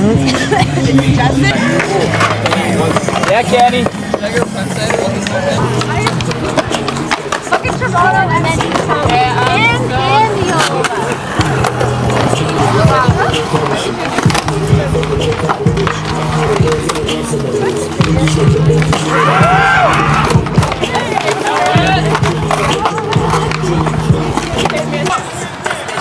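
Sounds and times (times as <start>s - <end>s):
skateboard wheels rolling on concrete: 0.0s - 26.0s
music with stepping bass line: 11.4s - 21.0s, 21.6s - 25.1s.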